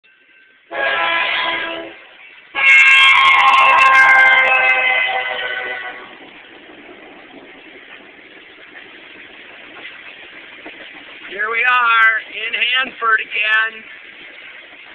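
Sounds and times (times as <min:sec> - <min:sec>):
freight cars rolling past: 0:00.2 - 0:14.9
train air horn blasts: 0:00.7 - 0:06.4.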